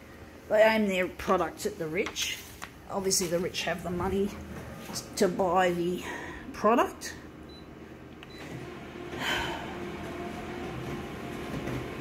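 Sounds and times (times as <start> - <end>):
office copier hum: 1.2 - 12.0.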